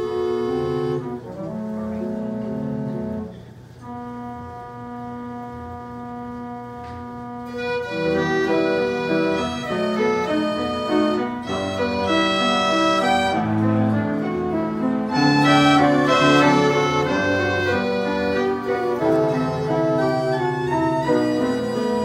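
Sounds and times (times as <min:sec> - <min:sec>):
piano orchestrion playing: 0:00.0 - 0:22.0.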